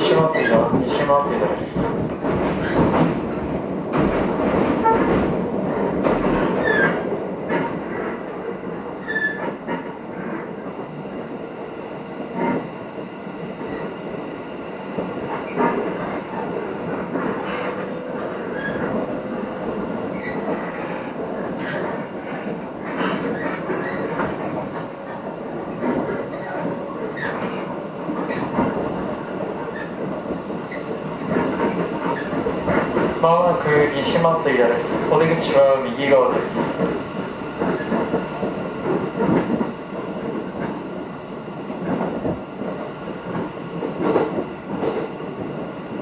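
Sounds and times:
train rumble: 0.0s - 46.0s.

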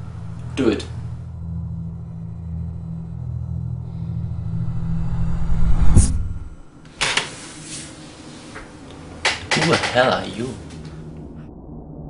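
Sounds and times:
low rumbling sci-fi drone: 0.0s - 7.0s, 10.6s - 12.0s.

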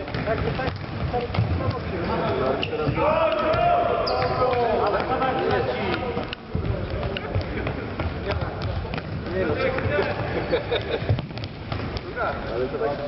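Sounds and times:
footsteps on hard court: 0.0s - 13.0s
players shouting: 2.8s - 5.4s.

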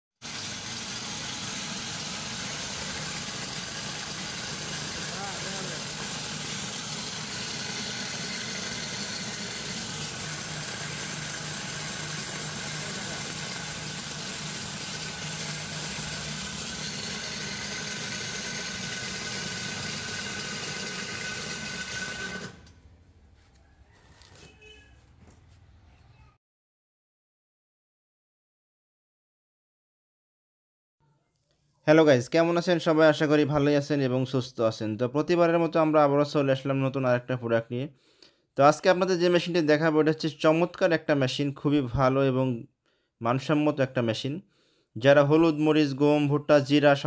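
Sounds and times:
electric grinder mill running: 0.2s - 23.0s.

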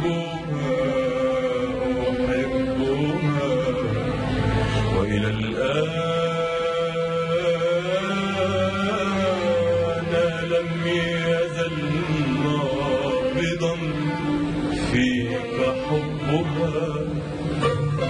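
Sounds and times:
man singing long sliding notes: 0.0s - 18.0s
orchestra strings and bass: 0.0s - 18.0s.

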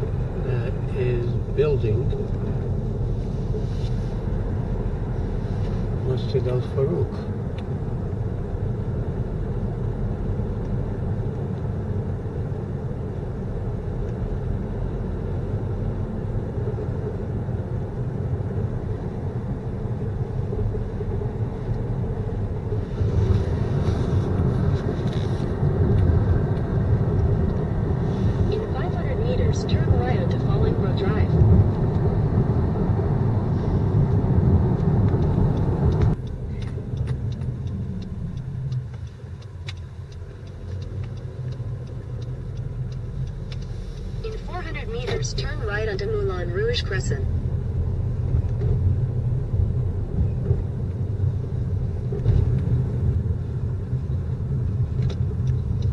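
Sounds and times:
car road and engine rumble: 0.0s - 55.9s.

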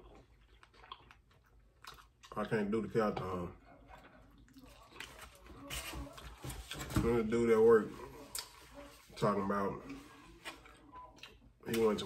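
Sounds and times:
person chewing food: 0.0s - 6.4s, 8.1s - 8.6s, 9.8s - 11.9s.

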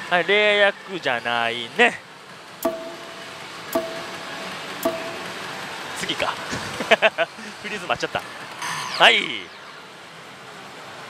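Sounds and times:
stop button click with beep: 2.6s - 5.5s
faint machine music: 2.6s - 5.7s.

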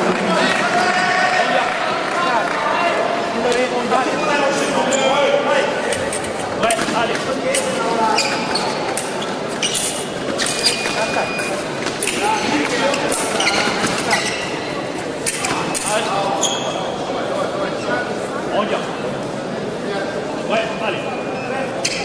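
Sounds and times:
voices in a large hall: 0.0s - 22.0s.

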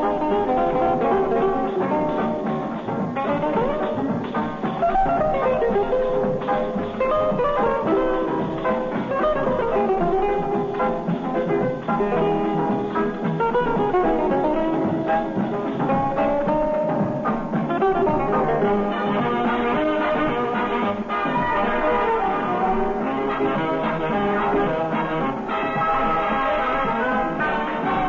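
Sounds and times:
orchestra playing instrumental music: 0.0s - 28.0s.

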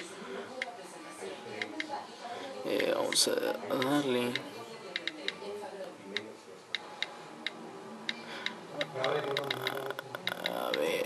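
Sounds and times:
touchscreen keyboard clicks: 3.8s - 5.4s, 7.0s - 10.9s.

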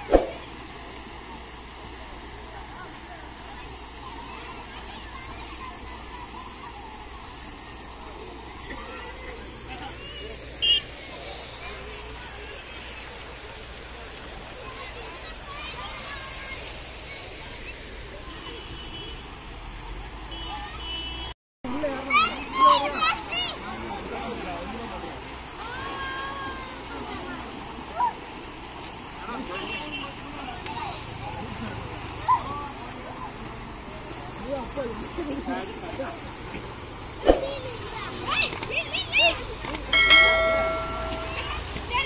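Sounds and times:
faint distant voices: 0.0s - 42.0s
outdoor background noise: 0.0s - 42.0s
faint high steady tone: 39.9s - 41.7s.

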